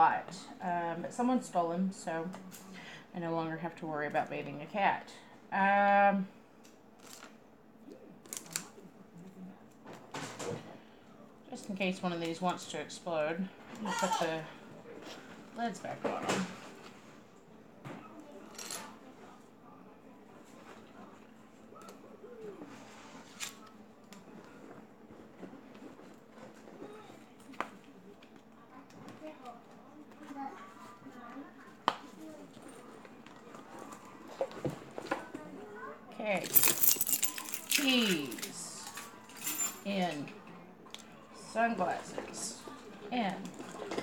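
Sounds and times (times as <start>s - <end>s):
faint voice-like sounds: 17.8s - 23.2s
plastic items clicking and rustling: 36.4s - 39.8s.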